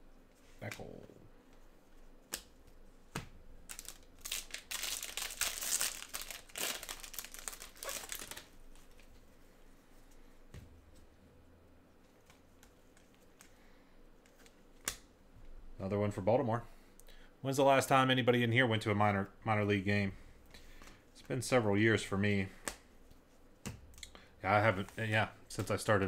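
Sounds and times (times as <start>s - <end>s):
foil wrapper crinkling and tearing: 3.7s - 9.1s.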